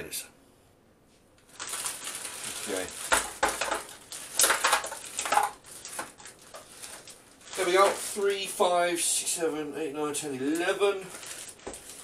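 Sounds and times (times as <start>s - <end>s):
plastic bag crinkling: 1.4s - 8.9s, 10.4s - 12.0s
potatoes clattering on metal tray: 2.5s - 8.2s, 10.5s - 12.0s.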